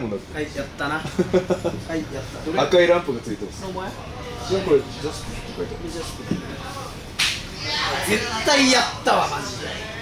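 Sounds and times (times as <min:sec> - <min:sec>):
faint voices: 0:04.0 - 0:10.0.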